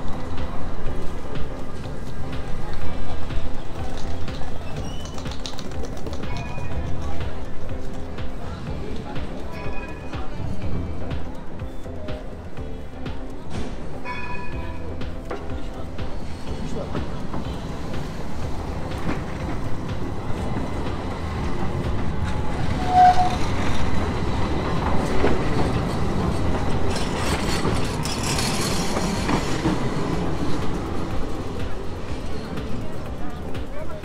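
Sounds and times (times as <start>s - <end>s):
tram wheels rolling on rails: 0.0s - 34.0s.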